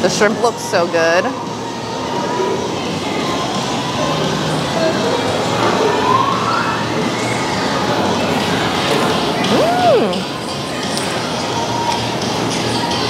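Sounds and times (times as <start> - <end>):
siren wailing: 9.5 - 10.2.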